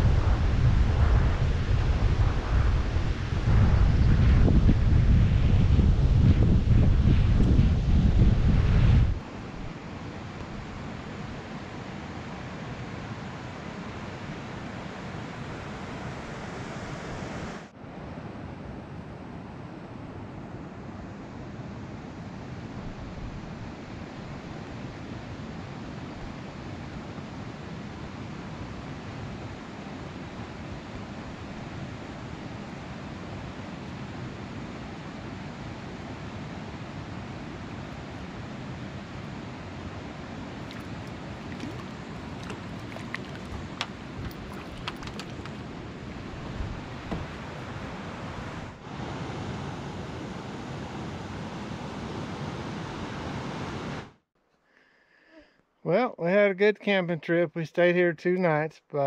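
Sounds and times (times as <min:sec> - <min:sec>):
wind on microphone: 0:00.0 - 0:11.0, 0:40.5 - 0:48.8
waves lapping against hull: 0:40.5 - 0:48.8.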